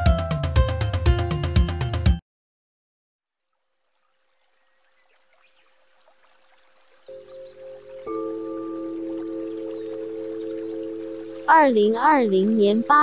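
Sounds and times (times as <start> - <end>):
sustained chord of held tones: 7.1 - 13.0.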